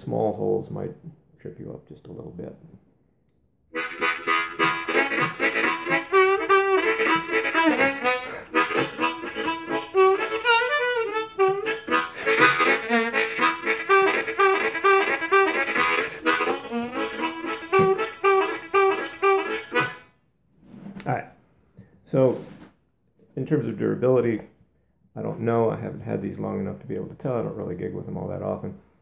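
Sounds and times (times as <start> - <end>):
harmonica with bent notes: 3.7 - 20.2.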